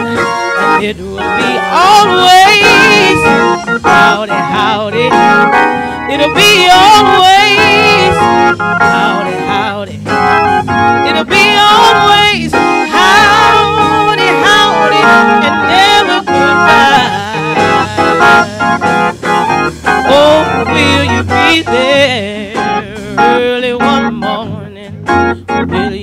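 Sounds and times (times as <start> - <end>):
woman singing with vibrato: 0.0 - 10.4, 11.0 - 18.9, 20.0 - 26.0
electronic organ: 0.0 - 26.0.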